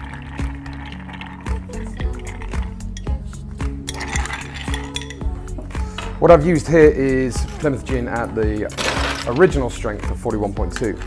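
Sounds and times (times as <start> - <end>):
background music with beat: 1.5 - 11.0
ice clinking in glass: 3.9 - 5.2.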